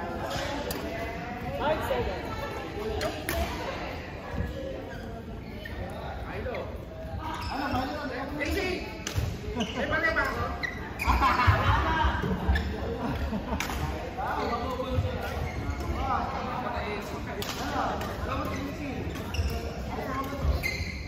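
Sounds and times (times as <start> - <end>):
people talking and calling out: 0.0 - 21.0.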